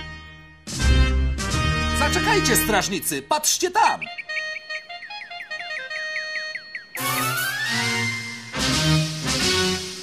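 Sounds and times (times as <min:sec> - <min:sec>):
woodwind imitating bird twitter: 0:03.8 - 0:07.8.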